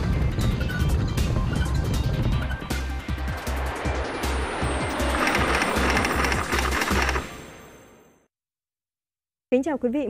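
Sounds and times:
television intro music: 1.7 - 7.9.

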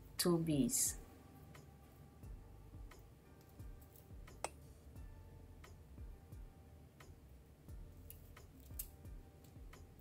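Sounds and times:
beads clicking together: 7.9 - 9.8.

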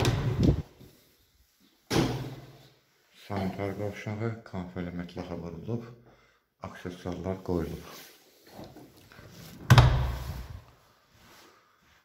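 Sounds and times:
door banging: 0.0 - 0.6.

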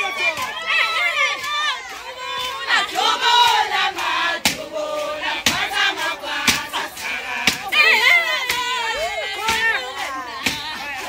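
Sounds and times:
women chanting together: 0.0 - 11.0
sharp beats: 1.3 - 9.8.

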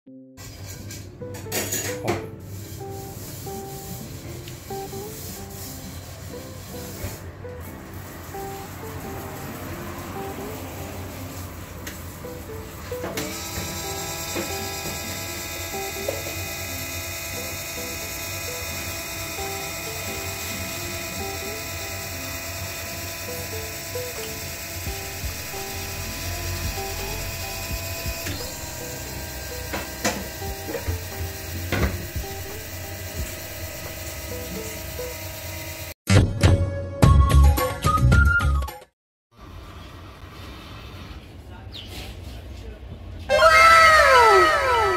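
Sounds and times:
light background music: 0.1 - 38.8
incubator fan whirring: 0.4 - 36.0.

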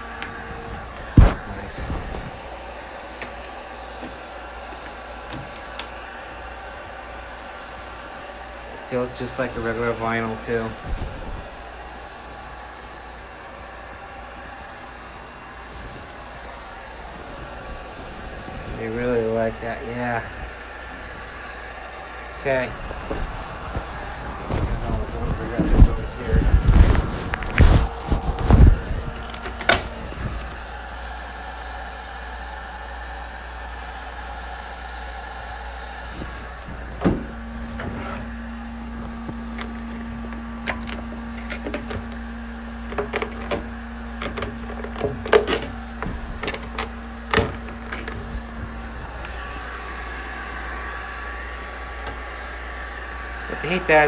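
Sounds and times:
steady low hum: 0.0 - 54.0
vinyl film rustling: 22.4 - 30.6, 36.0 - 49.7.

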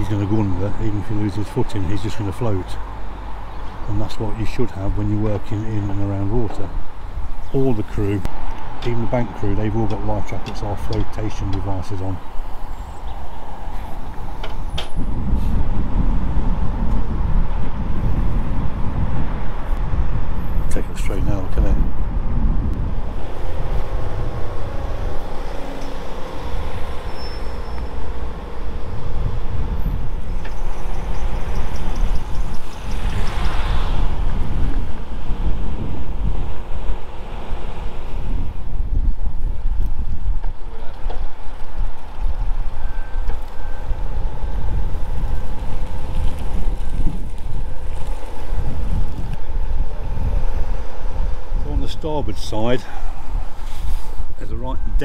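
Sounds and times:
wind buffeting microphone: 0.0 - 55.0
faint engine hum: 8.8 - 55.0.

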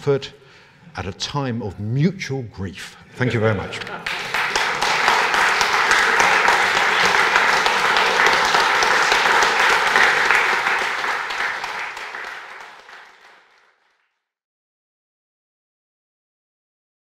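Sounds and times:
audience applauding: 3.8 - 14.1.

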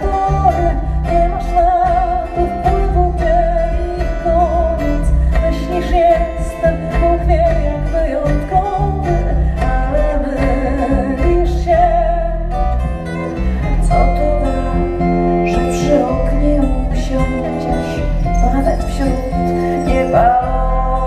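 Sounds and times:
acoustic guitar: 0.0 - 21.0
fretless bass: 0.0 - 21.0
person singing: 0.0 - 21.0.

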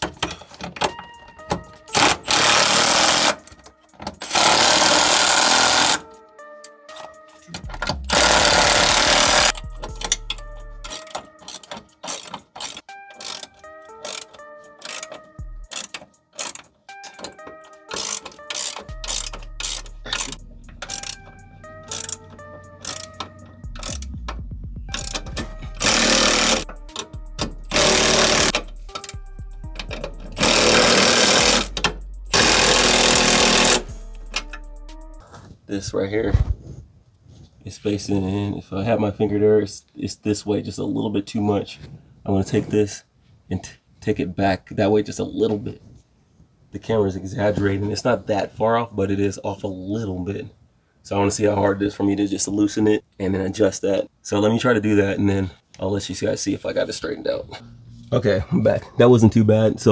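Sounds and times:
background music with a beat: 0.0 - 4.4, 5.6 - 35.2
cordless ratchet driving bolts: 1.6 - 3.5, 4.1 - 6.1, 6.9 - 34.7.

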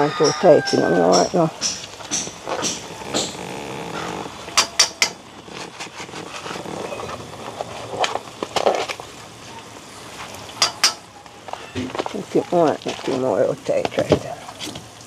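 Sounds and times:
low steady hiss: 0.0 - 15.0
packet crackling: 1.8 - 9.8.

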